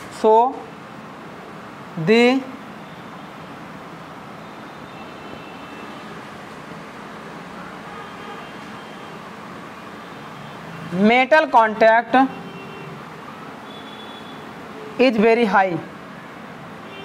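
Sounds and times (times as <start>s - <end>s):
steady background noise: 0.0s - 17.0s.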